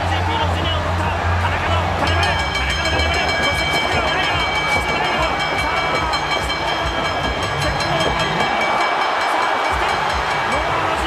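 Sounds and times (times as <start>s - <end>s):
crowd noise: 0.0s - 11.0s
loud music with steady beat: 0.3s - 9.0s.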